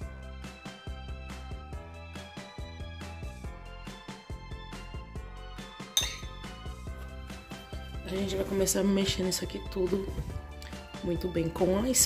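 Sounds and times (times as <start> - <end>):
background music with steady beat: 0.0 - 12.0
metal spoon clinking glass dish: 6.0 - 6.5.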